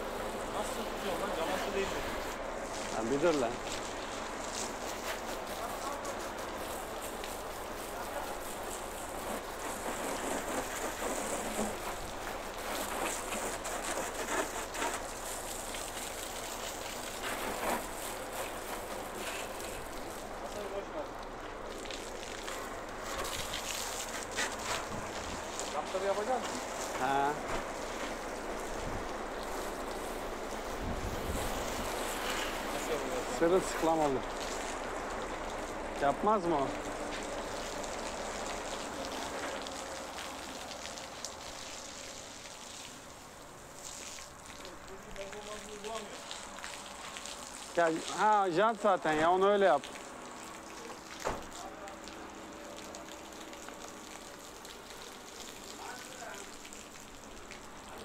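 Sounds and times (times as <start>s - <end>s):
hose water spraying on truck: 0.0s - 58.0s.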